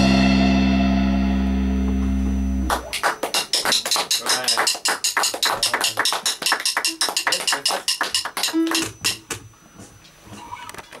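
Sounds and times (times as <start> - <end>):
people clapping: 2.7 - 9.4.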